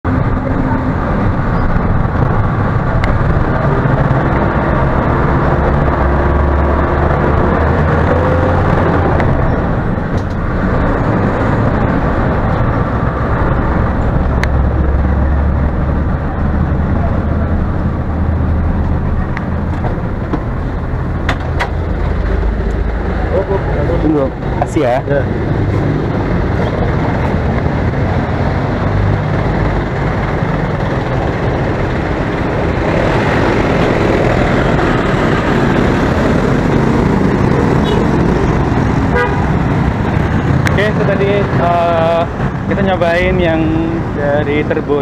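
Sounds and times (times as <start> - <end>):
bus engine and road rumble: 0.0 - 45.0.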